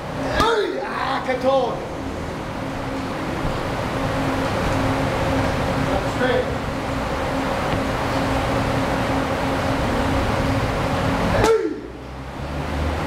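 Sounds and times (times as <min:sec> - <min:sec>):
electric fans rushing and humming: 0:00.0 - 0:13.0.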